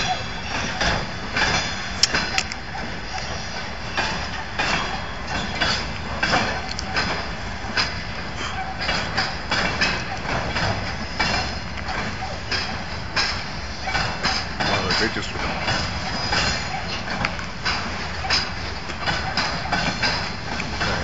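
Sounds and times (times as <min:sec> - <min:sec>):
freight train rumbling past: 0:00.0 - 0:21.0
train wheels clacking on rail joints: 0:00.0 - 0:21.0.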